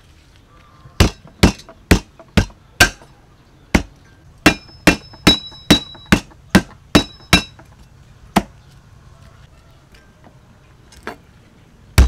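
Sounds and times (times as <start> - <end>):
cleaver striking wooden block: 1.0 - 3.1, 3.7 - 7.6
blade ringing: 4.5 - 6.2.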